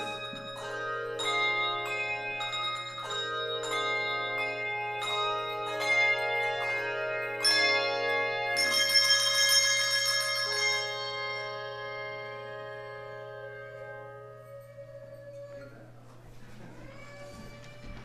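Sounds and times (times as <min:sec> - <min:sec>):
bells playing slow melody: 0:00.0 - 0:16.1.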